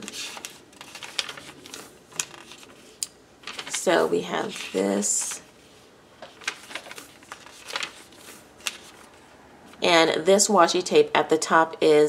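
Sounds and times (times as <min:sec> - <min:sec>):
notebook page turning: 0:00.0 - 0:05.4, 0:06.2 - 0:09.2
woman speaking: 0:03.7 - 0:05.5, 0:09.8 - 0:12.0.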